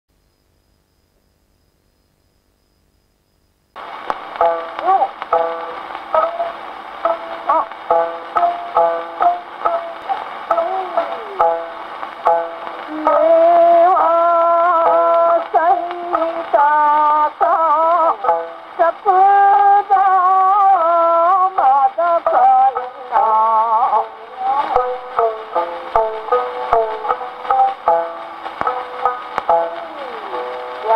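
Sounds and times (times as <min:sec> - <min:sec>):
record surface hiss: 0:00.1 - 0:30.9
short plucked notes: 0:03.9 - 0:30.9
person singing held notes: 0:10.1 - 0:11.6, 0:12.8 - 0:16.7, 0:29.6 - 0:30.9.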